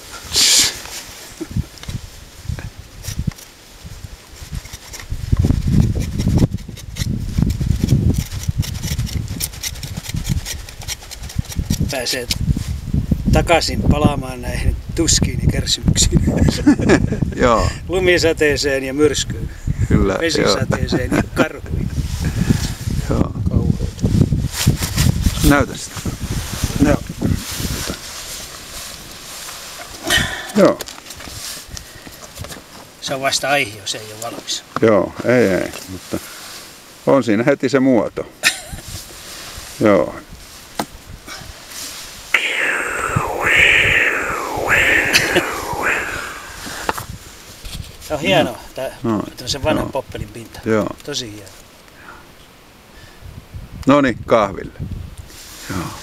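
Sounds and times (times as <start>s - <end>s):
outdoor background hiss: 0.0s - 7.4s, 11.9s - 56.0s.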